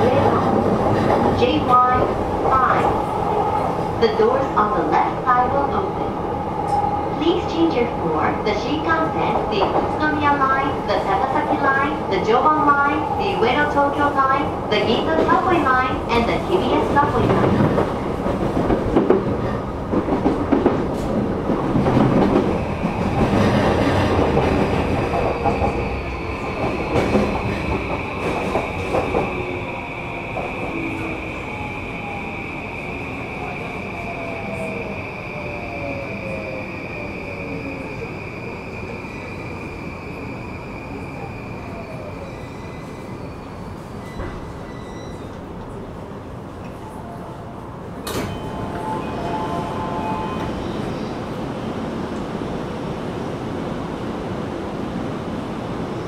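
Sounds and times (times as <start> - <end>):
train wheels rumbling on rails: 0.0 - 56.0
train inverter whine: 21.9 - 44.0
steady high squeal: 24.9 - 45.4.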